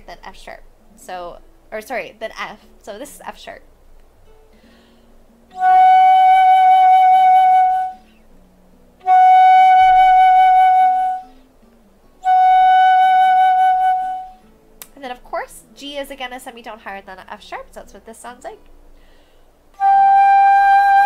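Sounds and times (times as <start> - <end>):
flute holding long notes: 5.5 - 8.2, 9.0 - 11.4, 12.2 - 14.4, 19.8 - 21.0.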